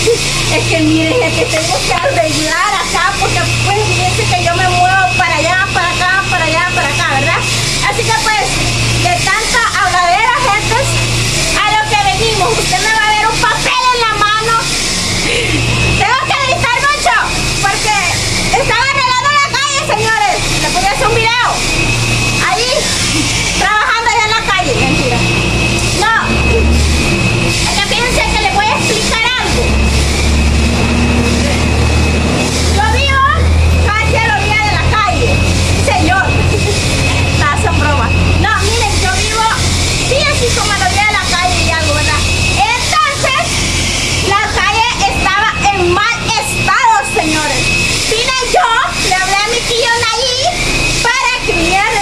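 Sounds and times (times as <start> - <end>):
woman talking: 0.0 - 26.8, 27.4 - 31.9, 32.6 - 52.0
woman's voice: 0.0 - 26.8, 27.4 - 31.8, 32.6 - 52.0
faint high whine: 0.0 - 52.0
steady low hum: 0.0 - 52.0.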